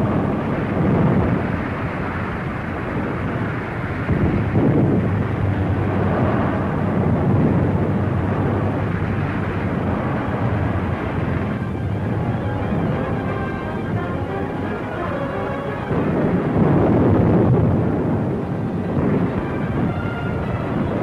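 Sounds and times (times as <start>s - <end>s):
heavy engines rumbling: 0.0s - 21.0s
film music: 5.1s - 21.0s.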